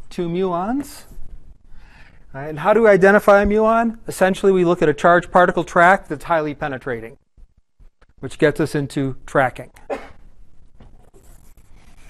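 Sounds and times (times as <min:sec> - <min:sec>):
faint room hum: 0:00.0 - 0:12.0
pencil scratching on paper: 0:11.0 - 0:12.0.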